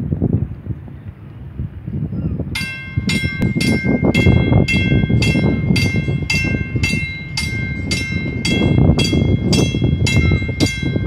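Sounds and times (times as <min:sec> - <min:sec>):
wind rumble on microphone: 0:00.0 - 0:11.0
drawbridge warning bell ringing: 0:02.6 - 0:11.0.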